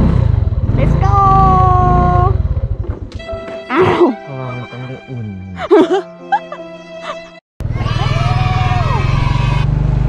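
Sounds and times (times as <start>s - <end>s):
motorbike engine rumble: 0.0s - 3.8s.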